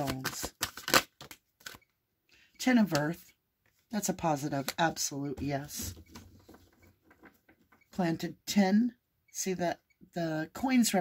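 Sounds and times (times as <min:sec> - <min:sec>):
cards being shuffled: 0:00.0 - 0:01.8.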